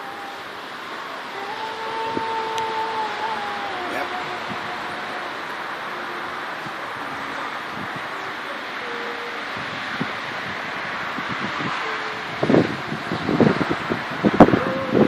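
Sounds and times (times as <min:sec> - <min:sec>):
wind gusts buffeting microphone: 0:00.0 - 0:15.0
wind rushing past microphone: 0:00.0 - 0:15.0.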